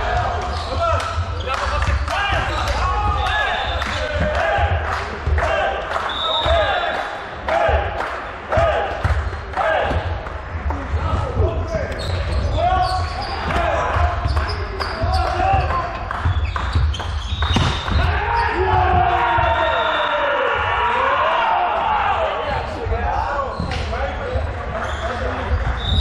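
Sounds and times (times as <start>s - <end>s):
players calling out: 0.0s - 26.0s
volleyball hits: 13.4s - 19.5s.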